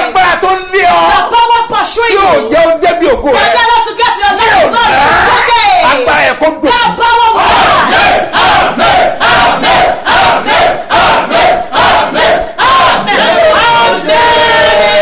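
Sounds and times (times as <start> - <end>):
man and woman shouting prayer: 0.0 - 8.4, 12.4 - 15.0.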